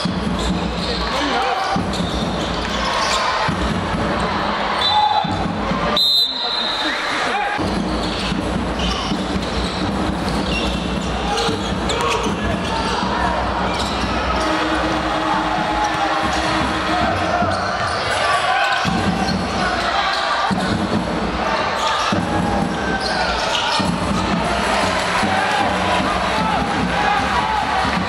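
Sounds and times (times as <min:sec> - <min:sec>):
crowd voices echoing: 0:00.0 - 0:28.0.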